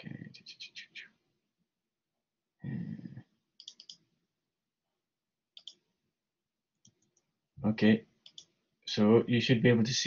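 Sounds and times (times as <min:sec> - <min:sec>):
computer mouse clicks: 0:03.6 - 0:04.1, 0:05.6 - 0:05.9, 0:06.8 - 0:07.3, 0:08.2 - 0:08.6.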